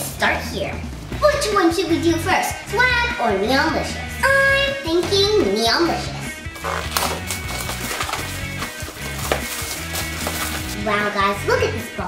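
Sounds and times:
background music with bass line: 0:00.0 - 0:12.0
plastic wrap crinkling and tearing: 0:06.6 - 0:10.8
sharp handling noises: 0:06.6 - 0:10.8
cardboard box handled: 0:06.7 - 0:10.8.

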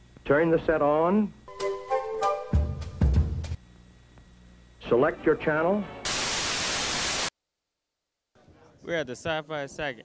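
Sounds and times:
television static hiss: 0:06.1 - 0:07.3.

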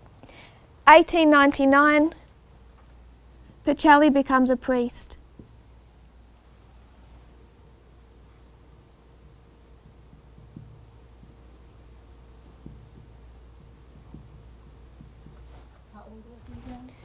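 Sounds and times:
low room hum: 0:00.0 - 0:17.0
light marker taps: 0:05.4 - 0:05.7, 0:09.2 - 0:15.5
marker squeaking on whiteboard: 0:07.8 - 0:15.5.

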